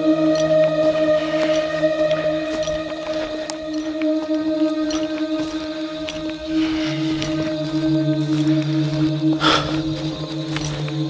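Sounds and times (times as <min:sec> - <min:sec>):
low drone music: 0:00.0 - 0:11.0.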